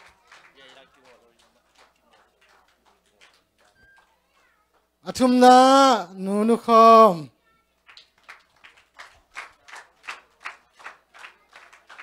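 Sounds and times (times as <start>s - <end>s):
faint high-pitched squeaks: 3.7s - 4.8s.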